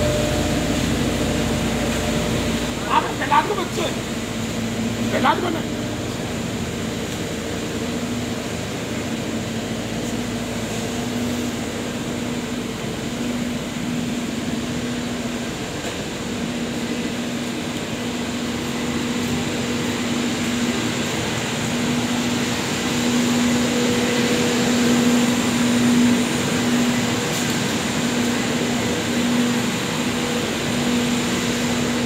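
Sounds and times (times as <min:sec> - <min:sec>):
textile machinery droning: 0:00.0 - 0:32.0.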